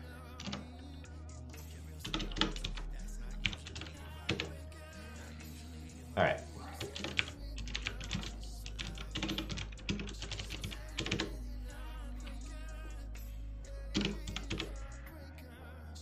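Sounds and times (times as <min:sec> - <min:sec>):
keyboard typing: 0:00.4 - 0:00.7, 0:02.0 - 0:04.6, 0:06.8 - 0:11.4, 0:13.9 - 0:14.8.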